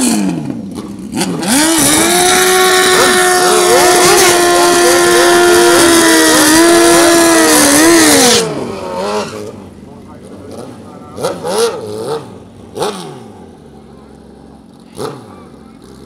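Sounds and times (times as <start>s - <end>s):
motorcycle engine revving: 0.0s - 16.0s.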